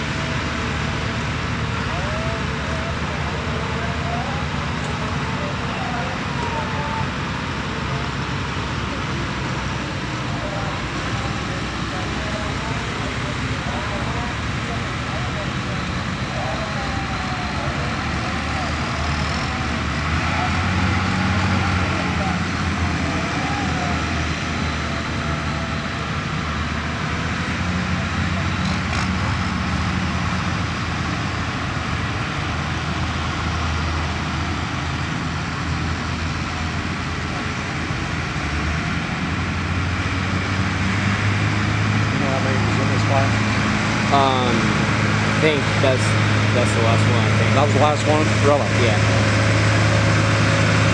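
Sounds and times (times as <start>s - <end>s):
people talking: 0.0s - 29.4s, 36.6s - 38.0s, 42.0s - 49.4s
tractor engine running: 0.0s - 50.9s.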